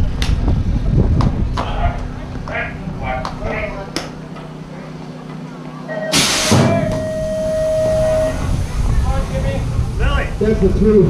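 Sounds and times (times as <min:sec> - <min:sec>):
steady single-note tone: 0:05.8 - 0:08.6
pneumatic hiss: 0:06.1 - 0:08.9.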